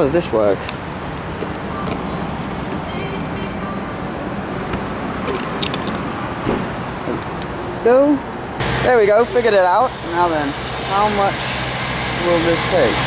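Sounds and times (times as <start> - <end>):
road traffic: 0.0 - 13.0.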